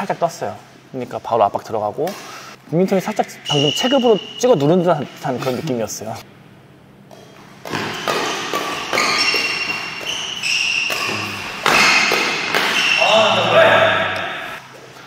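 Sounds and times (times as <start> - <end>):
shoes squeaking on court floor: 3.4 - 5.8, 7.0 - 15.0
rackets striking shuttlecock: 7.0 - 13.0.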